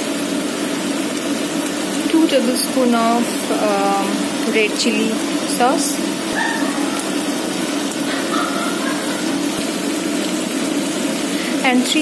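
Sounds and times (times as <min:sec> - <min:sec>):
continuous low hum: 0:00.0 - 0:12.0
vegetables sizzling in a wok: 0:00.0 - 0:12.0.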